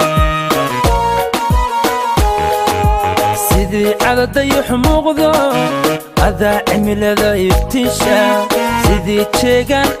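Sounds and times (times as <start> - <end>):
keyboard-like melody: 0.0 - 10.0
deep drum beats: 0.2 - 8.2, 8.8 - 10.0.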